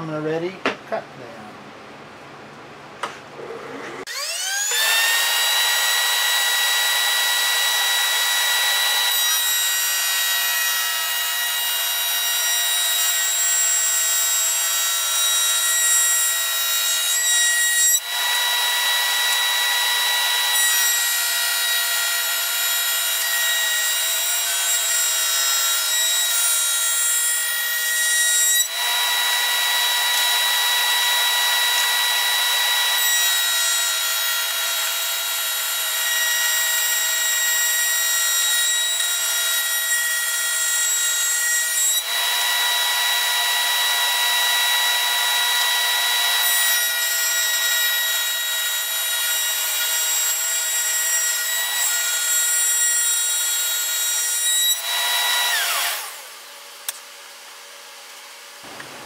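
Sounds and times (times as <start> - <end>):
router bit cutting wood: 3.4 - 56.4
table router whining: 3.4 - 56.4.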